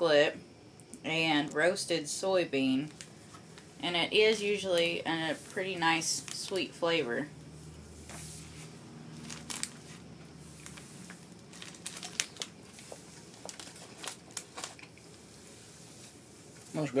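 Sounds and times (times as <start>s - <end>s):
plastic snack bag crinkling: 6.2s - 6.6s, 9.1s - 15.1s.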